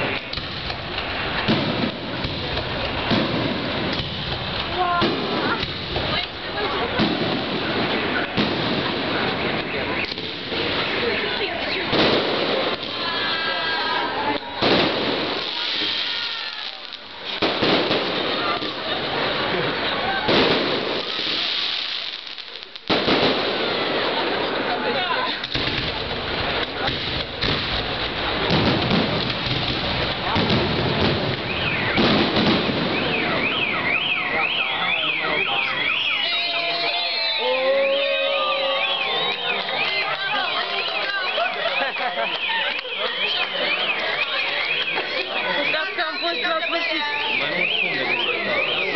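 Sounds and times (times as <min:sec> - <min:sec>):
fireworks bursting: 0:00.0 - 0:48.9
alarm wailing: 0:31.3 - 0:48.9.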